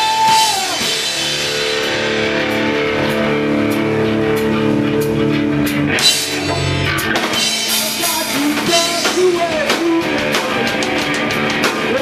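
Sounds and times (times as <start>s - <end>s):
drum kit with cymbal hits: 0.0s - 12.0s
electric guitar chords: 0.0s - 12.0s
live rock band playing: 0.0s - 12.0s.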